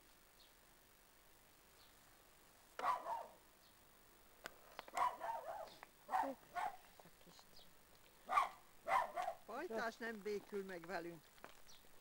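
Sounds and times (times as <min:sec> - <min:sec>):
dog barking: 0:02.8 - 0:03.4, 0:04.9 - 0:06.9, 0:08.3 - 0:09.5.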